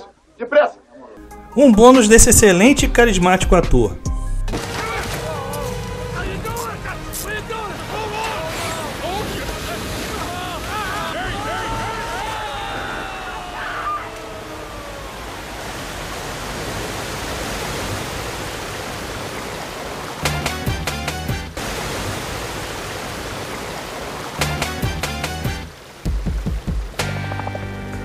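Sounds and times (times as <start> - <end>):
music bursts with sharp hits: 1.2 - 10.3
rushing water roar: 4.5 - 27.7.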